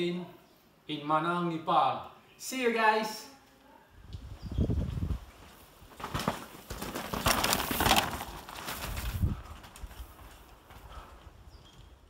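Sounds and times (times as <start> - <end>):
bike tyres crunching on dirt: 4.8 - 12.0
bike knocks and rattles: 5.9 - 11.0.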